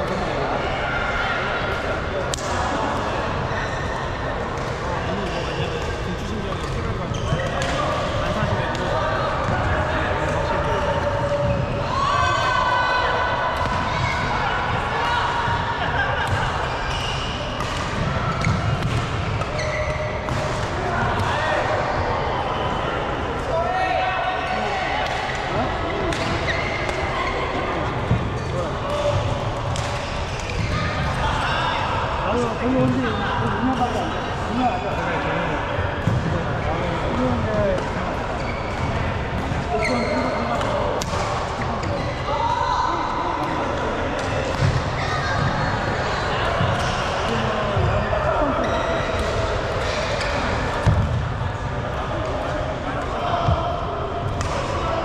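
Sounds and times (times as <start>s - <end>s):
echoing crowd chatter: 0.0s - 55.0s.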